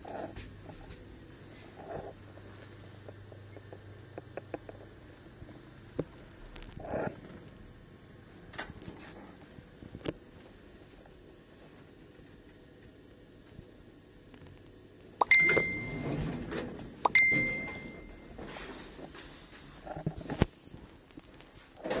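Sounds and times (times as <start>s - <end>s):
elevator clicks: 15.2s - 18.3s.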